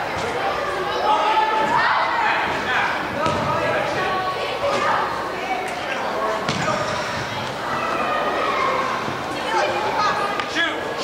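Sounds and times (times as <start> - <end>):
players and spectators calling out: 0.0 - 11.0
soccer ball thuds: 3.2 - 3.6, 6.5 - 6.8.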